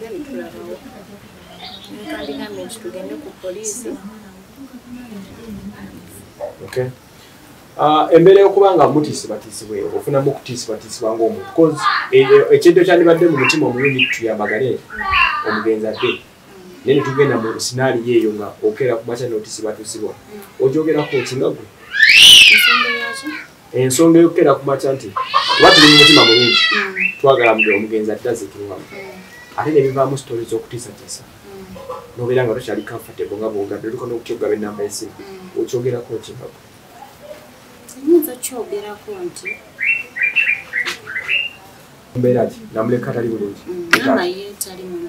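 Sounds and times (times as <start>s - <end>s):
bird chirping: 1.3s - 3.6s, 13.0s - 17.6s, 21.0s - 23.7s, 25.1s - 28.0s, 39.1s - 41.8s
person speaking: 11.2s - 18.3s, 25.2s - 27.9s, 42.1s - 45.0s
shrill wailing cry: 11.4s - 17.7s, 20.9s - 23.6s, 25.0s - 27.8s, 28.9s - 30.2s.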